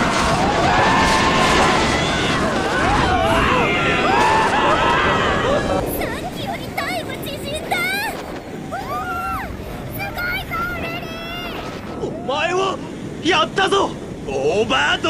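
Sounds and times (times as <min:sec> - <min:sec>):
people screaming: 0:00.0 - 0:12.6
roller coaster train rumbling: 0:00.0 - 0:15.0
wind noise: 0:00.0 - 0:15.0.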